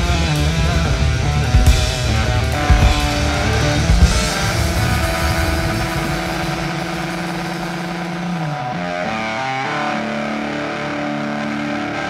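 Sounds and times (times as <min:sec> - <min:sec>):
overdriven electric guitar note: 0:00.0 - 0:12.0
rock band playing: 0:00.0 - 0:12.0.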